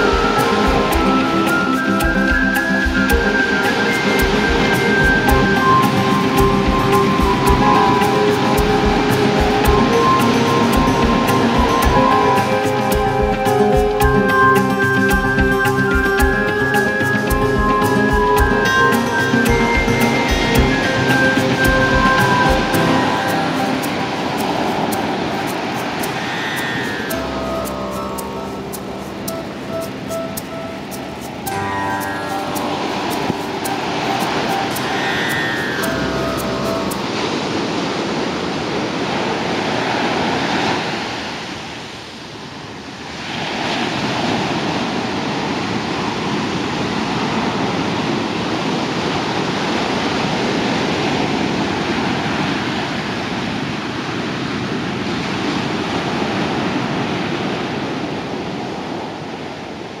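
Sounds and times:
soft instrumental music: 0.0s - 38.2s
ocean surf washing onto beach: 0.0s - 60.0s.

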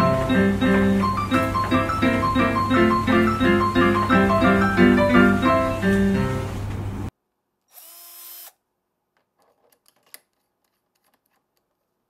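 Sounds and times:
cordless drill motor whirring: 7.7s - 8.6s.

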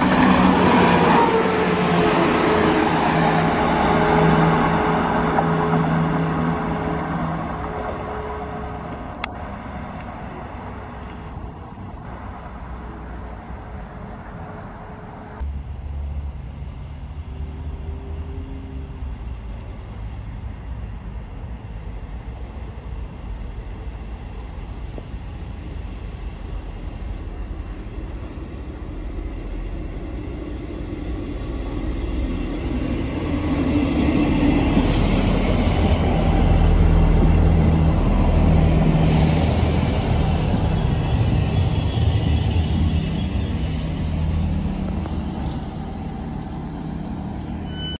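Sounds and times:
diesel train engines: 0.0s - 47.9s
rail noise: 0.0s - 47.9s
brake hiss or squeal: 34.8s - 36.1s, 39.0s - 44.8s.

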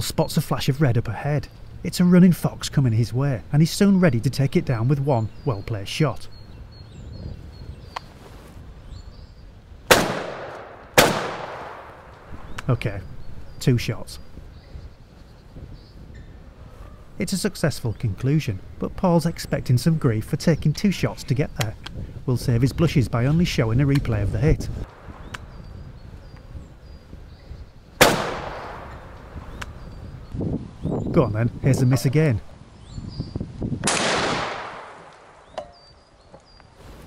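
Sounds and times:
wind rumble on microphone: 0.0s - 37.0s
shotgun shots: 9.9s - 12.2s, 28.0s - 29.1s, 33.8s - 35.5s.

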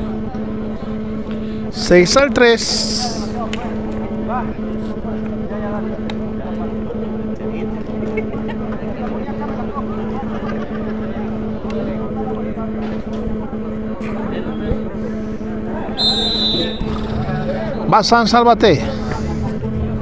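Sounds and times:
low hum and rumble: 0.0s - 20.0s
distant voices talking: 2.8s - 20.0s.

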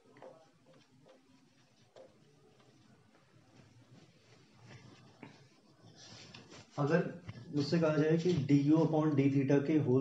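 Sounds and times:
marker pen writing on whiteboard: 0.0s - 9.2s.

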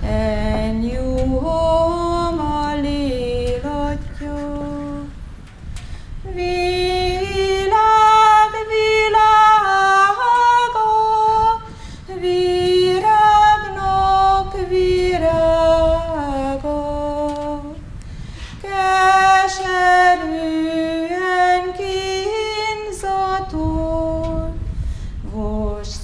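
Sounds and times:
woman singing unaccompanied: 0.0s - 5.3s, 6.2s - 26.0s
wind rumble on microphone: 0.0s - 26.0s.

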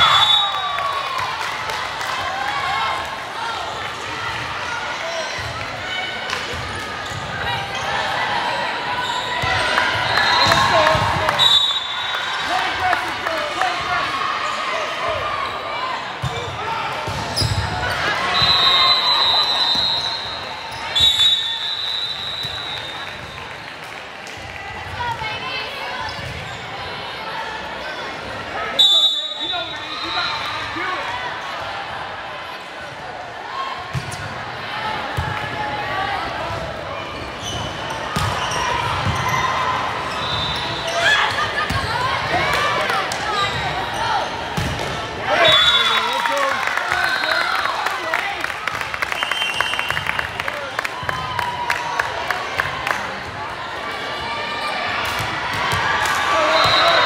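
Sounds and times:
referee whistle blasts: 0.0s - 0.7s, 11.3s - 12.4s, 18.3s - 23.1s, 28.8s - 30.5s, 40.1s - 41.0s, 45.3s - 46.2s, 49.1s - 50.1s, 56.4s - 57.0s.

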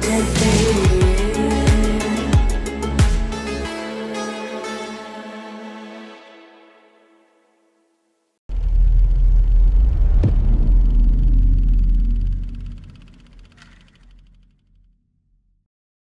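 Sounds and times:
deep cinematic boom and rumble: 8.5s - 14.3s
sharp cinematic hit: 8.5s - 14.5s.

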